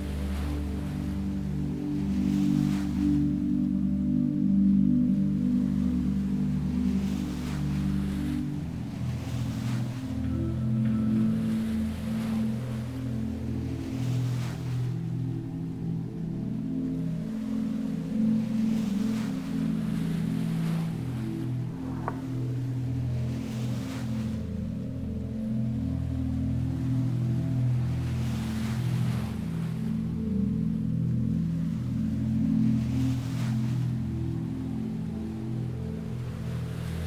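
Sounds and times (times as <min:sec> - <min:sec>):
ambient drone chords: 0:00.0 - 0:37.0
ocean waves washing: 0:00.0 - 0:37.0.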